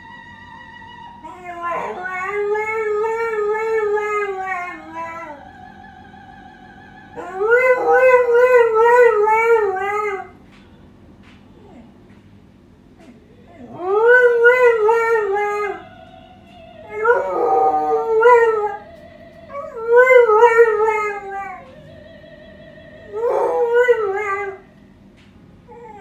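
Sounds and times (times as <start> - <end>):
dog howling: 0.0 - 10.4, 13.5 - 24.7
music from television: 0.0 - 12.4, 13.8 - 25.6.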